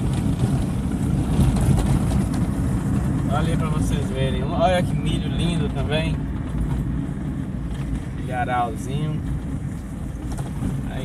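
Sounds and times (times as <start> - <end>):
car driving on dirt road: 0.0 - 11.0.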